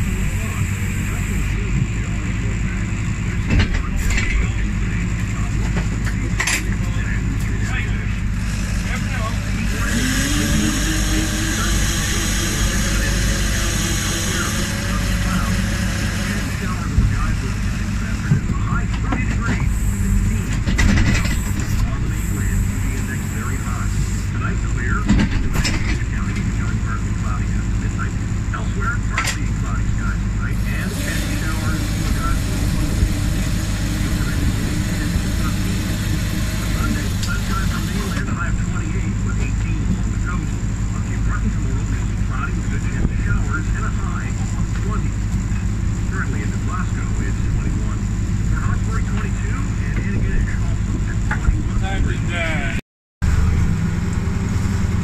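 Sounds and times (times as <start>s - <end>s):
boat engine humming: 0.0s - 25.1s, 26.0s - 55.0s
trap hauler pulling rope: 8.2s - 18.4s, 30.5s - 38.2s.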